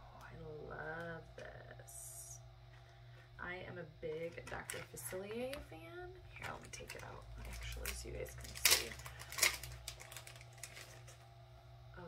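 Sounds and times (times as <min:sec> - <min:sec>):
sticker wrapper crinkling: 0:04.1 - 0:05.7, 0:06.3 - 0:11.2.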